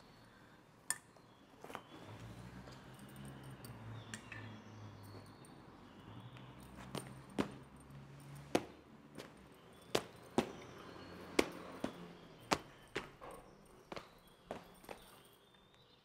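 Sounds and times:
footsteps on hard floor: 10.0s - 15.2s.

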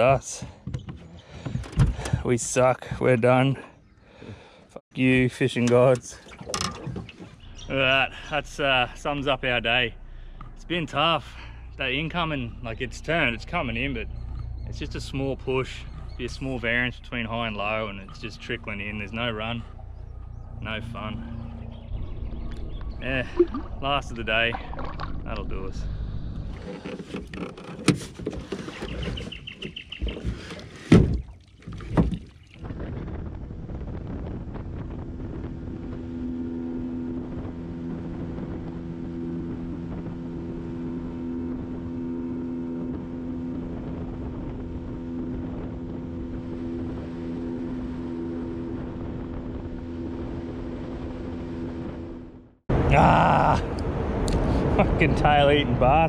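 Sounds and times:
boat engine humming: 0.0s - 56.0s
water splashes: 5.6s - 7.4s, 23.0s - 25.8s, 28.4s - 32.9s.

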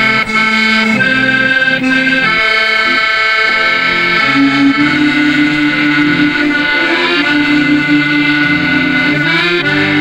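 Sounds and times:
accordions playing chords: 0.0s - 10.0s
upright double bass: 0.0s - 10.0s.

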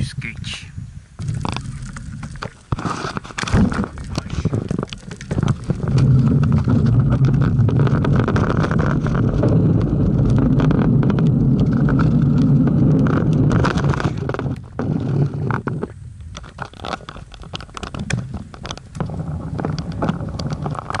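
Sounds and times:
wind rushing over microphone: 0.0s - 21.0s
bicycle clicks and rattles: 4.7s - 21.0s.

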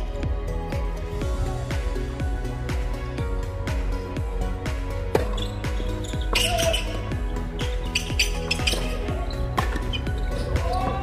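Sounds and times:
background music with steady beat: 0.0s - 11.0s
tennis racket hitting ball: 9.6s - 10.0s.

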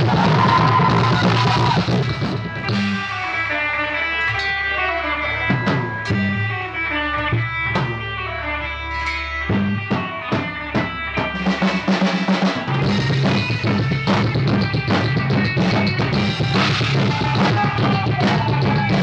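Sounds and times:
drum hits: 0.0s - 3.3s, 9.6s - 19.0s
electric guitar: 0.0s - 19.0s
upright bass: 0.0s - 19.0s.

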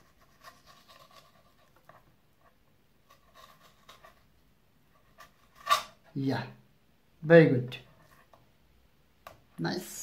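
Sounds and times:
knife scraping on cutting board: 5.2s - 6.0s.

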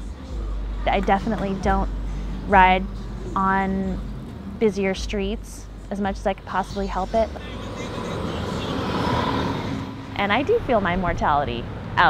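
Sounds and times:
car driving past: 5.6s - 12.0s.

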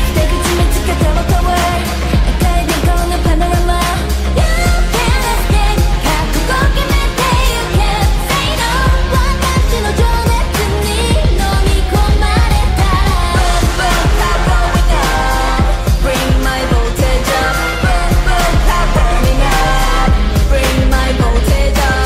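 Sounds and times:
women singing over dance beat: 0.0s - 22.0s.

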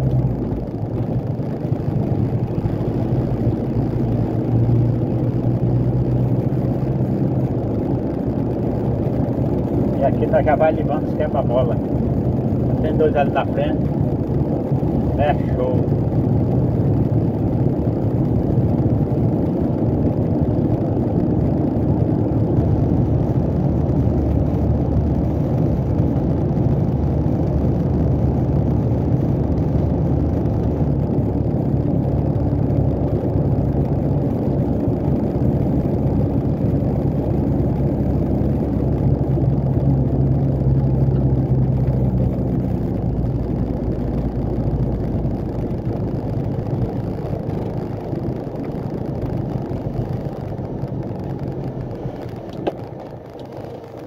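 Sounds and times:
diesel truck engine running: 0.0s - 54.0s.

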